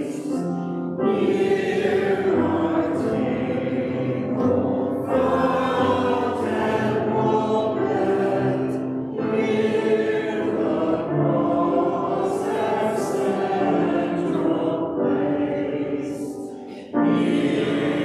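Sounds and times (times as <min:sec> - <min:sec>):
choir and congregation singing hymn: 0:00.0 - 0:18.0
grand piano accompaniment: 0:00.0 - 0:18.0
singers breathing: 0:16.5 - 0:17.0.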